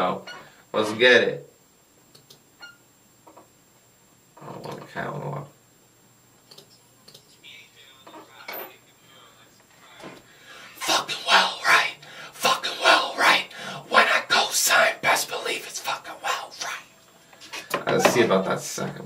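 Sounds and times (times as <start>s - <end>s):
man whispering raspy vocals: 10.8s - 16.9s.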